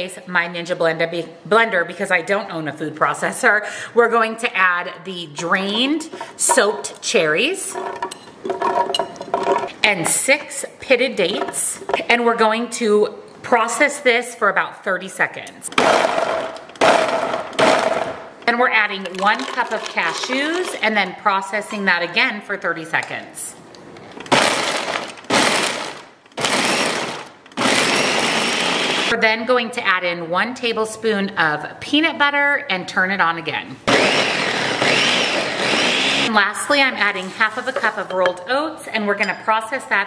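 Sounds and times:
blender chopping: 15.7 - 18.2, 19.1 - 20.8, 24.3 - 29.1, 33.9 - 36.3.

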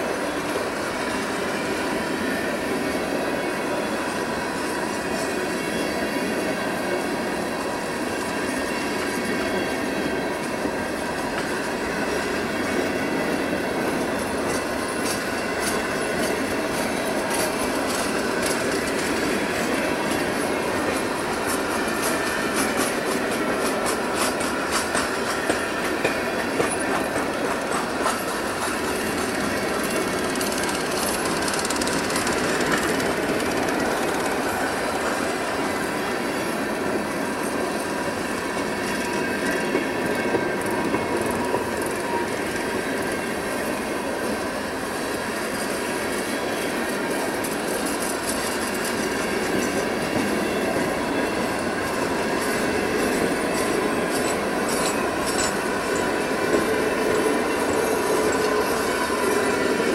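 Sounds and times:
train wheels rumbling on rails: 0.0 - 59.9
wheels clicking over rail joints: 13.9 - 35.7, 47.0 - 59.9.

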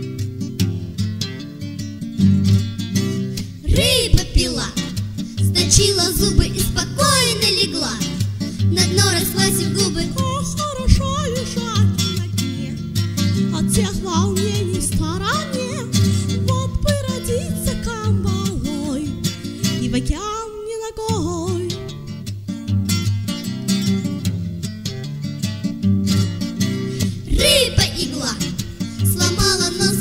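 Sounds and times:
acoustic guitar: 0.0 - 30.0
person singing: 3.7 - 12.8, 27.1 - 30.0.

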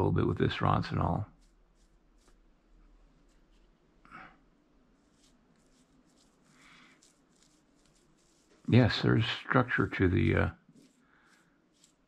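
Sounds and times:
paintbrush brushing on clay: 0.5 - 12.0.

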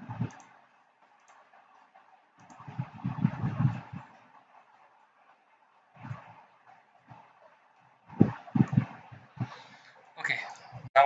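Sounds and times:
computer mouse clicking: 0.0 - 9.6
low rough noise burst: 0.0 - 11.0.

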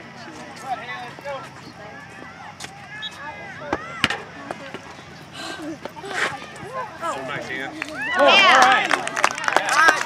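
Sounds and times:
players and spectators calling out: 0.0 - 10.0.

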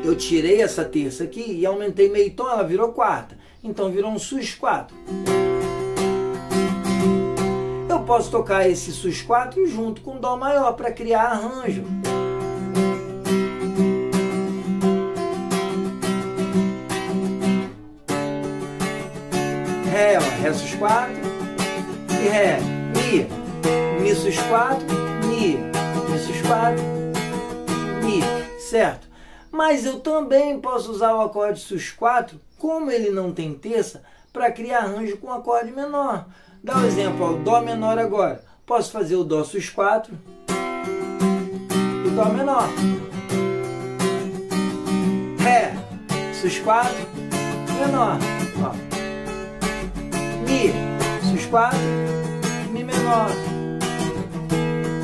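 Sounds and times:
acoustic guitar strumming: 0.0 - 31.4, 34.8 - 55.0.

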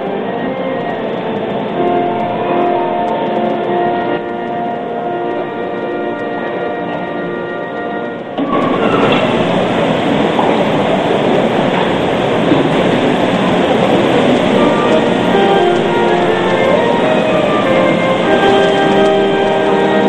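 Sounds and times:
loud noisy wash: 0.0 - 20.0.

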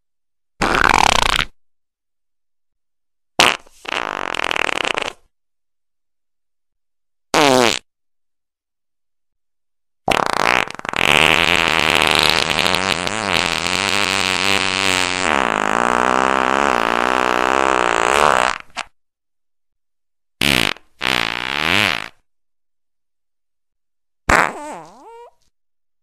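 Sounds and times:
farting: 0.6 - 1.6, 3.4 - 5.3, 7.3 - 7.9, 10.1 - 19.0, 20.4 - 22.3, 24.3 - 25.5.

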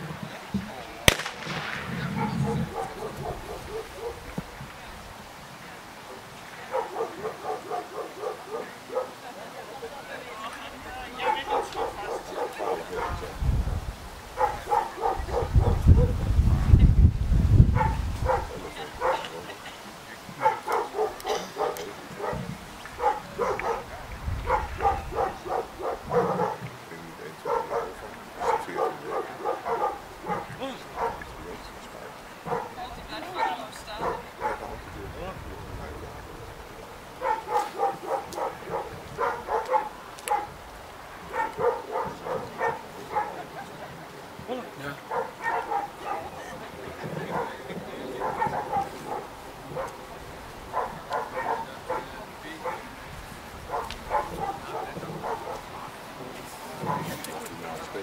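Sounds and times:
wind rumbling on microphone: 0.0 - 9.0, 10.8 - 19.4, 22.0 - 26.8, 27.4 - 44.5, 45.1 - 58.0
dog barking: 2.1 - 4.3, 6.1 - 9.2, 11.2 - 13.4, 14.4 - 16.2, 17.7 - 19.5, 20.4 - 31.6, 32.4 - 34.8, 37.2 - 40.6, 41.2 - 43.6, 45.1 - 46.4, 47.2 - 50.1, 50.7 - 53.0, 53.7 - 55.7, 56.8 - 57.2.

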